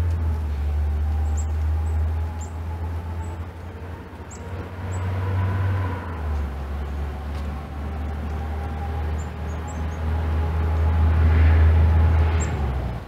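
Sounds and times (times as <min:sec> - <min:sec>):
passing vehicle engine rumble: 0:00.0 - 0:13.0.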